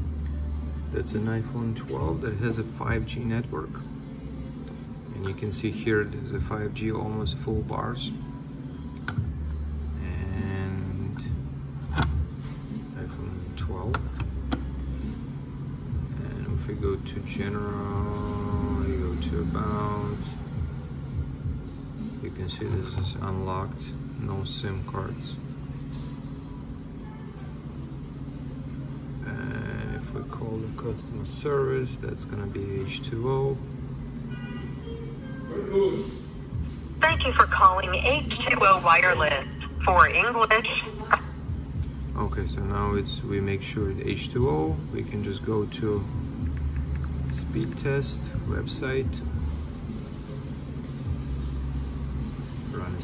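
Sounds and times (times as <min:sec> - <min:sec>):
low steady rumble: 0:00.0 - 0:35.6, 0:36.2 - 0:53.0
low background hum: 0:00.0 - 0:53.0.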